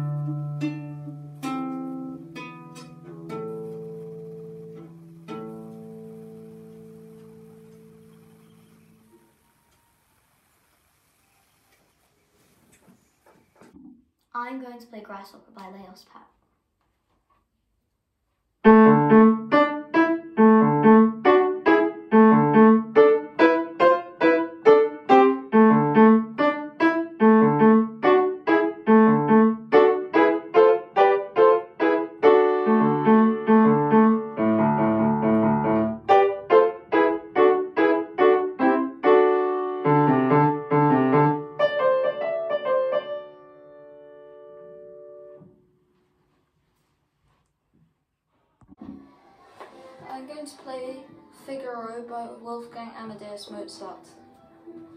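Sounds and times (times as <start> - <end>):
upright piano playing lively piece: 0.0 - 9.0, 18.6 - 45.5.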